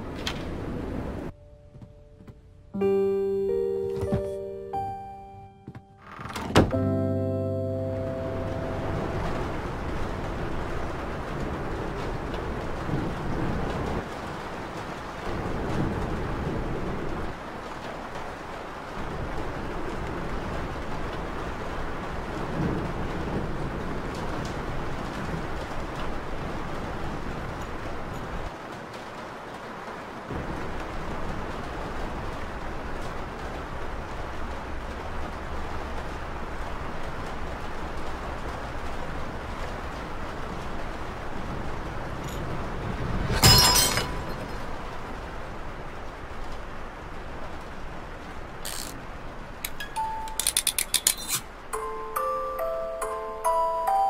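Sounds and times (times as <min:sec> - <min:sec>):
rain-like noise: 0:00.0 - 0:05.3, 0:06.2 - 0:54.0.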